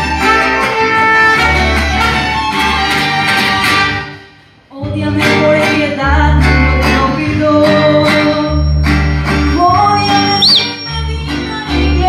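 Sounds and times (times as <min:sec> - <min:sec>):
mariachi band playing: 0:00.0 - 0:04.4, 0:05.2 - 0:12.0
strummed guitars: 0:00.0 - 0:12.0.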